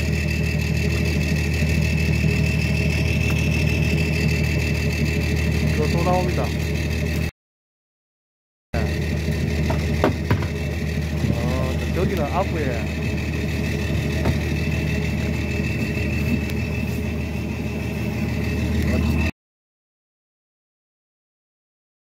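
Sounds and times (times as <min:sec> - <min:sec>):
boat engine idling: 0:00.0 - 0:07.3, 0:08.8 - 0:19.3
sharp knocks: 0:09.7 - 0:10.7, 0:14.2 - 0:14.6.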